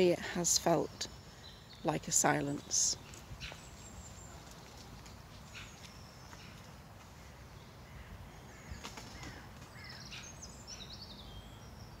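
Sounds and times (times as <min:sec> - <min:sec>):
small birds chirping and trilling: 0:00.0 - 0:12.0.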